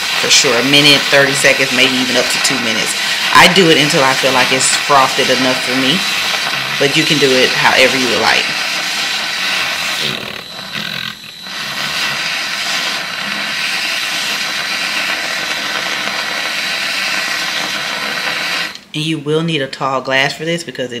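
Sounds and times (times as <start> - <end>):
milk frother whirring: 0.0 - 18.9.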